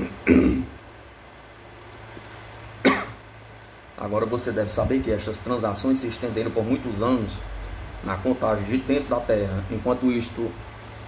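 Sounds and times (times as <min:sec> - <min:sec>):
man clearing his throat: 0:00.0 - 0:00.8, 0:02.8 - 0:03.2.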